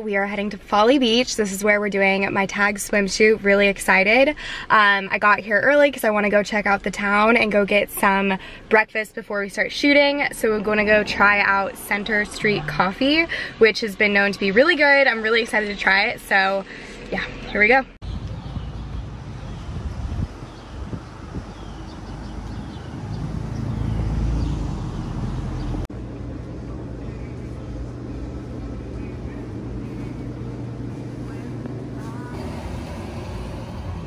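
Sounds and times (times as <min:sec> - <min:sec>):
steady low hum: 0:00.0 - 0:21.9, 0:25.9 - 0:34.0
vehicle passing with low rumble: 0:17.2 - 0:34.0
faint voices: 0:26.6 - 0:34.0.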